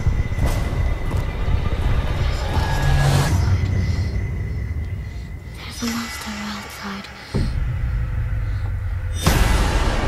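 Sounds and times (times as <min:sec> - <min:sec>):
trailer music with deep bass: 0:00.0 - 0:10.0.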